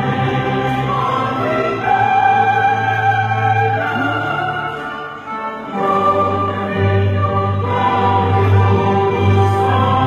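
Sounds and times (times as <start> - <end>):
choral music with orchestra: 0.0 - 10.0.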